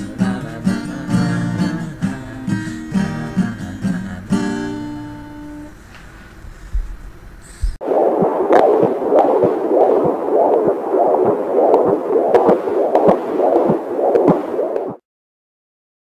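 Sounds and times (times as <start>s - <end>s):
ultrasound heartbeat whooshing: 7.6s - 15.0s.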